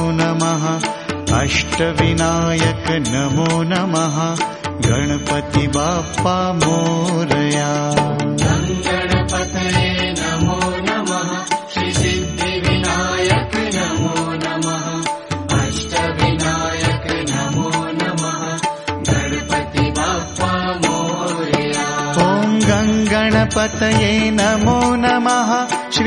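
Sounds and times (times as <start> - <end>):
devotional music with rhythmic accompaniment: 0.0 - 26.0.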